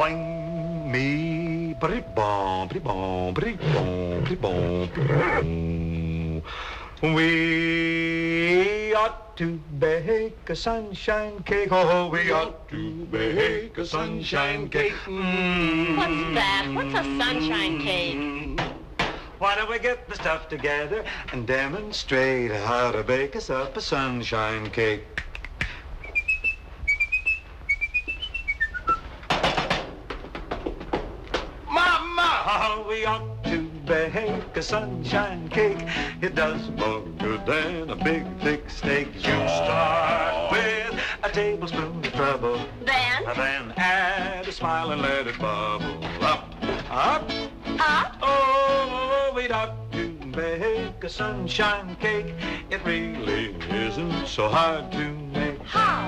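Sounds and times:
person whistling a tune: 0.0s - 2.7s, 26.0s - 29.1s
deep male voice singing: 0.0s - 16.9s, 31.7s - 56.0s.

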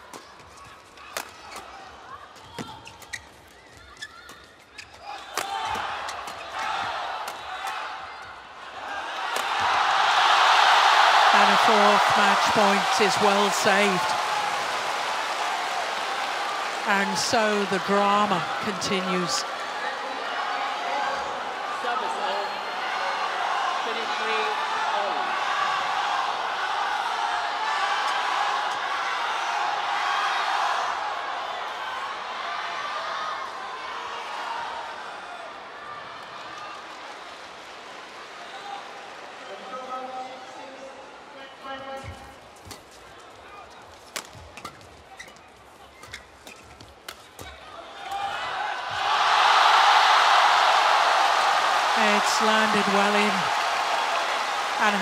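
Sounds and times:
indoor arena crowd: 0.0s - 55.0s
crowd roar: 5.1s - 37.1s, 47.8s - 55.0s.

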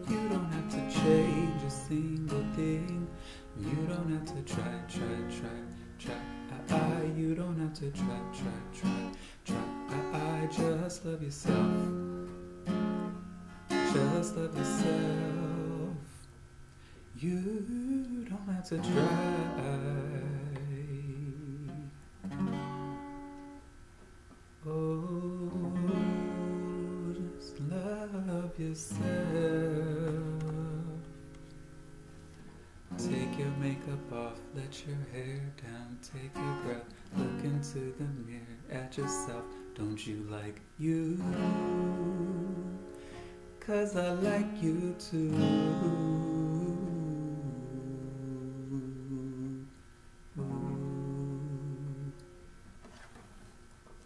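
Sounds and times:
acoustic guitar: 0.0s - 54.0s
man singing long note with vibrato: 13.8s - 16.2s, 17.2s - 21.9s, 24.6s - 31.1s, 33.0s - 42.8s, 43.6s - 49.7s, 50.4s - 52.2s.

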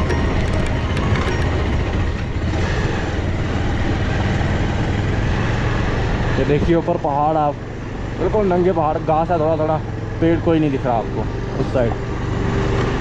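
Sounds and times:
motorcycle engine drone: 0.0s - 13.0s
wind and road noise: 0.0s - 13.0s.

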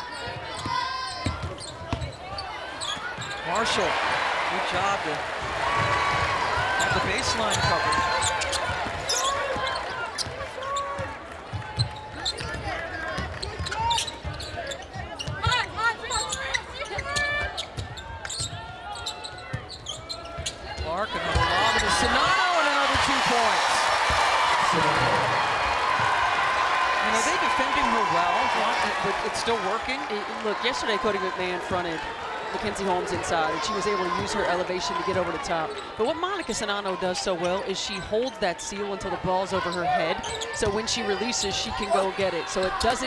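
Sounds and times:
crowd cheering: 0.0s - 14.8s, 20.7s - 43.0s.

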